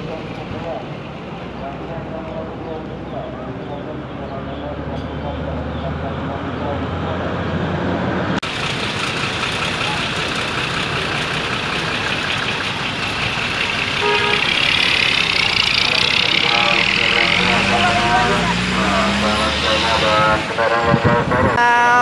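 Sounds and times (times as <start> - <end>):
bus engines running: 0.0 - 22.0
people's voices: 0.0 - 22.0
traffic: 0.0 - 22.0.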